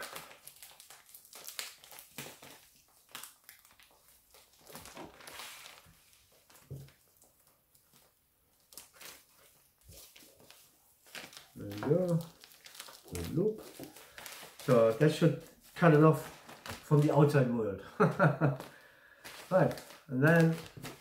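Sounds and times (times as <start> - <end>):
plastic bag crinkling: 0.0 - 21.0.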